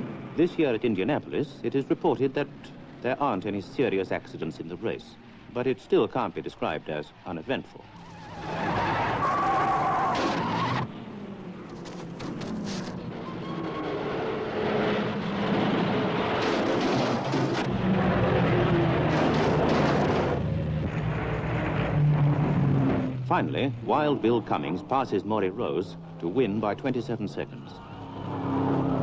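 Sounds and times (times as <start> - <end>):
racing car engines passing: 6.6 - 29.0.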